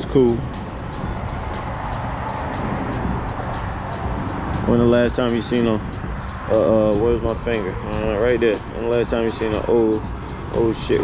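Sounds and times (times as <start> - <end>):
low rumble of vehicle noise: 0.0 - 11.0
music playing: 0.0 - 11.0.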